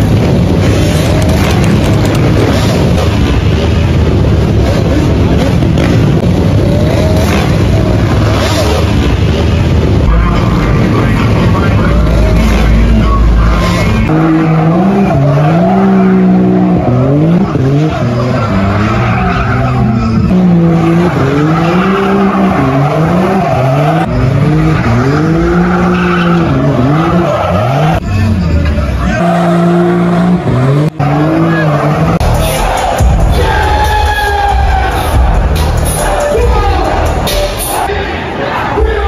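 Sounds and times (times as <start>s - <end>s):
engine revving: 0.0s - 37.9s
tyres squealing on pavement: 12.0s - 35.0s.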